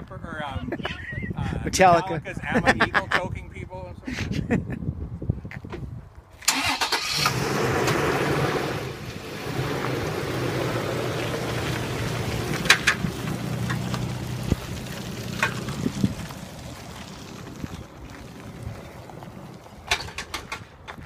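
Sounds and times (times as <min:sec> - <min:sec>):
truck engine cranking and idling: 0:06.4 - 0:21.0.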